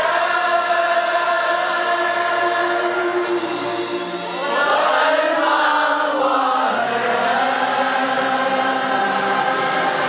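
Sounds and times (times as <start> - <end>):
group of people singing: 0.0 - 10.0.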